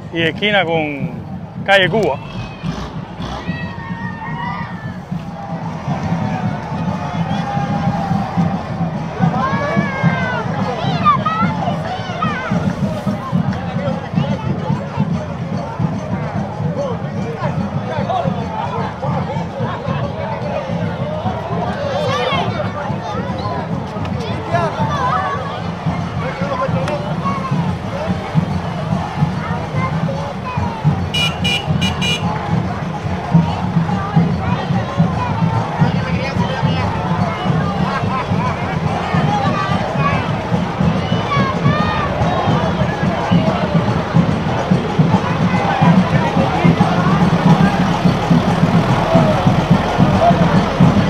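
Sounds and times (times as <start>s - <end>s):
voices chattering and calling: 0.0s - 51.0s
dense rapid drumming: 0.1s - 18.5s, 23.7s - 51.0s.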